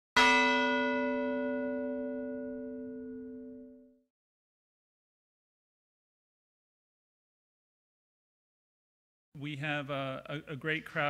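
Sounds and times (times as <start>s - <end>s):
bell-like note ringing: 0.2s - 4.1s.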